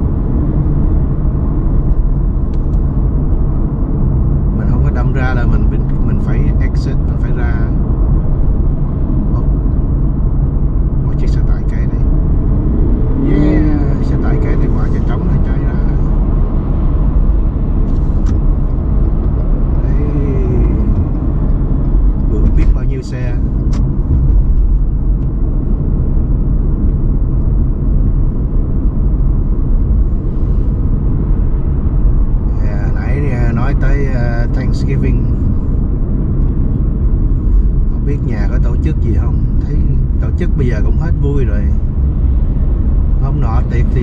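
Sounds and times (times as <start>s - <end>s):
car road and engine rumble: 0.0s - 44.0s.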